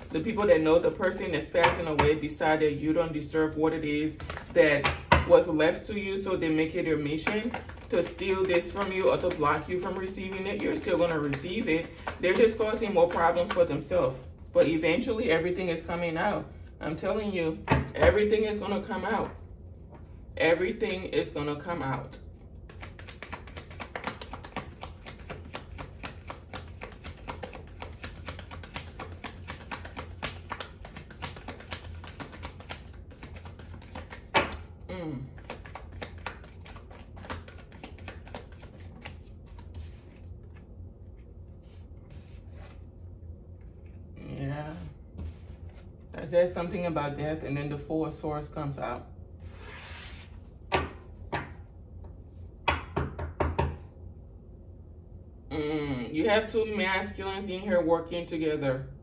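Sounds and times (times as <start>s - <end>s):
low steady hum: 0.0s - 59.0s
cards being shuffled: 4.0s - 5.2s, 6.3s - 14.8s, 22.2s - 44.0s.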